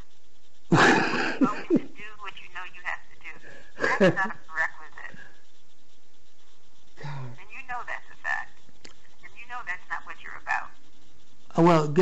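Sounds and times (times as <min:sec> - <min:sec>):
voices over a telephone line: 0:01.4 - 0:03.4, 0:04.0 - 0:05.3, 0:07.4 - 0:08.5, 0:09.2 - 0:10.8.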